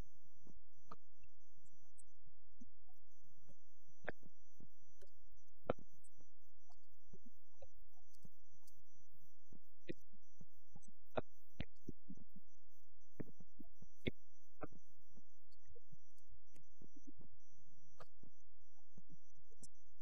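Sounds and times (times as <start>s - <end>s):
faint clicks and ticks: 0.0s - 20.0s.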